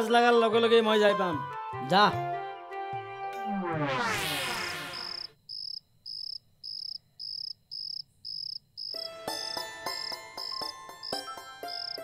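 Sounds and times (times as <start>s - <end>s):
cricket chirping: 4.9s - 12.0s
music of ringing notes: 9.0s - 12.0s.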